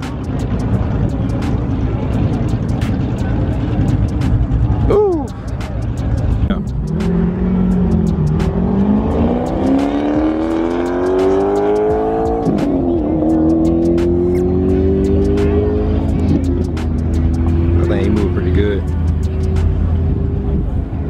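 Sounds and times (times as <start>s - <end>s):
car engine accelerating hard: 0.0s - 21.0s.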